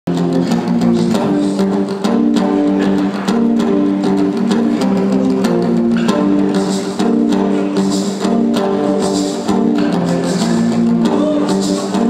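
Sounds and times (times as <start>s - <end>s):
acoustic guitar strumming: 0.1s - 12.0s.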